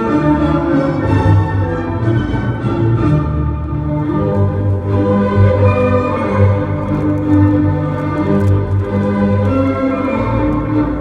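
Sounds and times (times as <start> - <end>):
orchestral music over sound system: 0.0 - 11.0.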